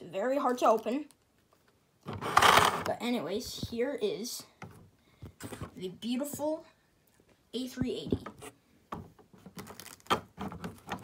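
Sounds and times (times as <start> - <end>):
plastic packaging crackling: 9.4 - 11.0
sharp plastic crack: 9.4 - 11.0.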